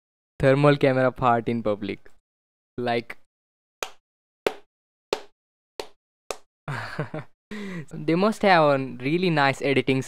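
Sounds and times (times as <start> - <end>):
man laughing: 6.7 - 7.8.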